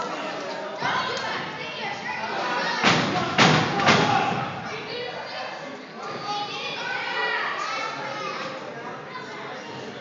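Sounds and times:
children's voices: 0.0s - 10.0s
crowd chatter: 0.0s - 10.0s.

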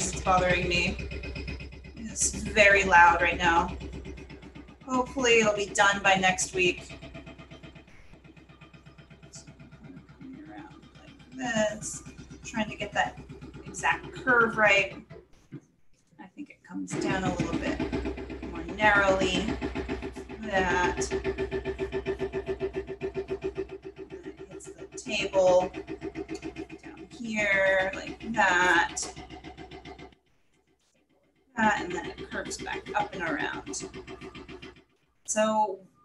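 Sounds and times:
low hum: 0.0s - 30.6s, 31.5s - 36.0s
rapid mechanical pulsing: 0.0s - 36.0s.

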